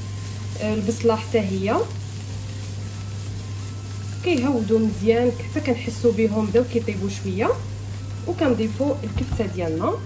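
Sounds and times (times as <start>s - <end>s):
steady low hum: 0.0s - 10.0s
vegetables sizzling in oil: 0.0s - 10.0s.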